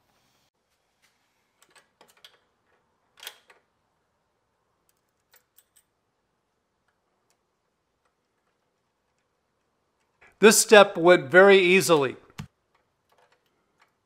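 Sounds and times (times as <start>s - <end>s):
faint metal clicks and taps: 12.4s - 14.0s.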